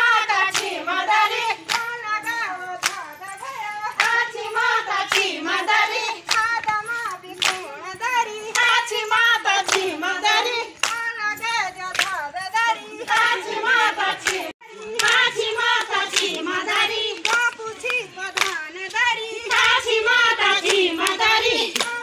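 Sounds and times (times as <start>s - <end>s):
hand claps: 0.0s - 22.0s
women singing folk song: 0.0s - 22.0s.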